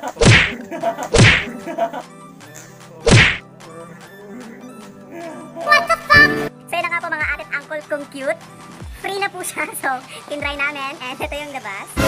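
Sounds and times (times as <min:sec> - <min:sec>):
loud short smacks: 0:00.2 - 0:01.5, 0:03.1 - 0:03.4.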